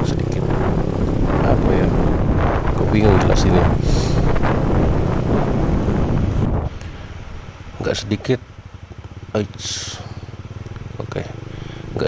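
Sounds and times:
wind buffeting microphone: 0.0 - 8.2
motorbike engine: 0.0 - 12.0
road noise: 0.0 - 12.0.

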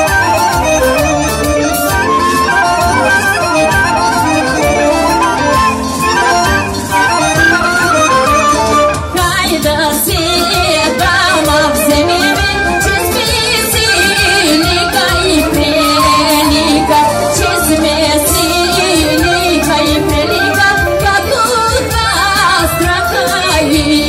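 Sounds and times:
folk band over loudspeakers: 0.0 - 24.0.

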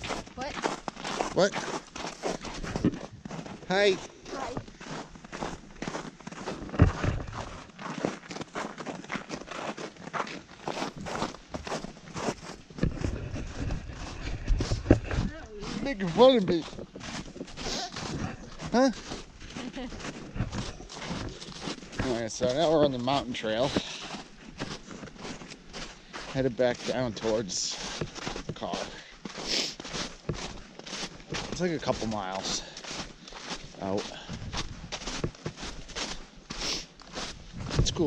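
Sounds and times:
footsteps on snow: 0.0 - 38.0.

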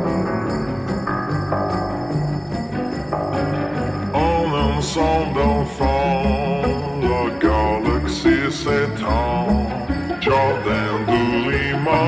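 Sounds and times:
slowed layered singing: 4.1 - 12.0.

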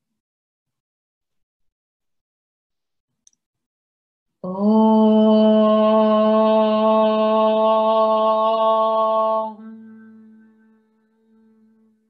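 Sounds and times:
woman chanting om: 4.4 - 12.0.

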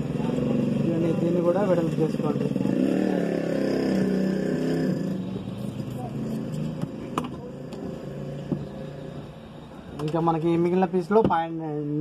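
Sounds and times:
vehicle engine droning: 0.0 - 10.6.

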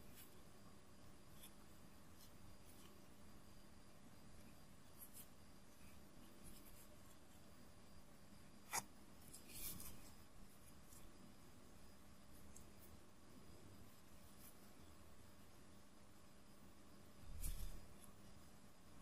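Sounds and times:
faint handling noise: 8.7 - 11.2.

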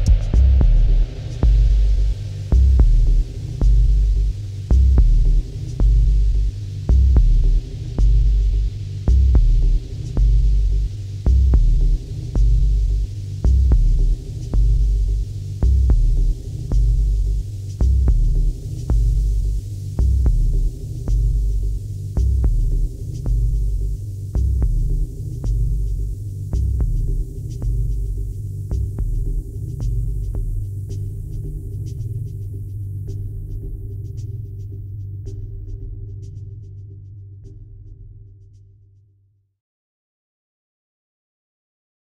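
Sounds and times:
dub techno music: 0.0 - 36.4
throbbing sub-bass pulses: 0.0 - 38.4
faint ticking percussion: 0.0 - 39.1.

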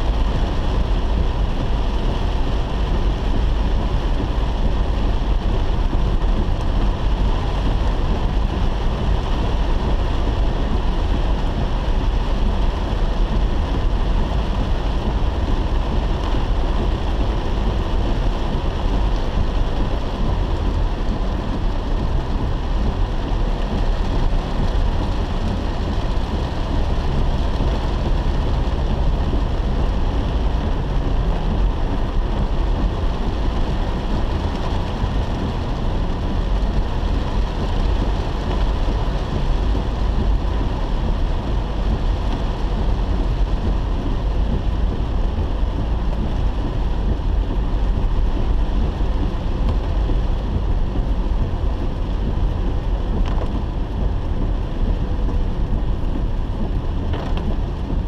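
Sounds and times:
heavy rain on car roof: 0.0 - 58.0
moving car rumble: 0.0 - 58.0.

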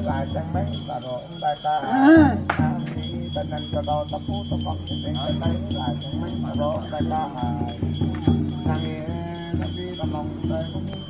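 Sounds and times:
small bells jingling: 0.0 - 11.0
voices chanting: 0.0 - 11.0.

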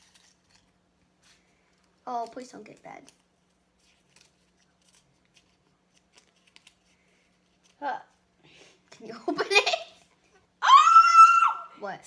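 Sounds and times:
paper crinkling as unfolded: 0.0 - 8.2.

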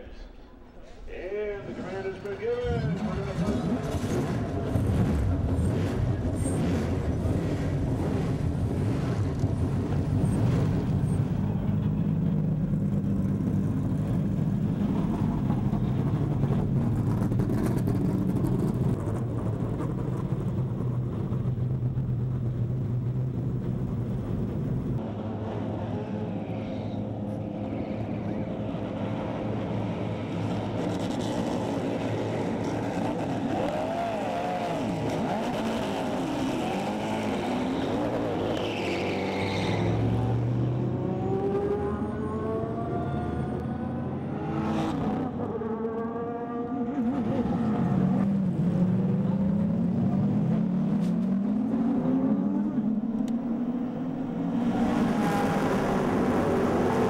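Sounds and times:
race cars revving and passing: 1.6 - 57.0.

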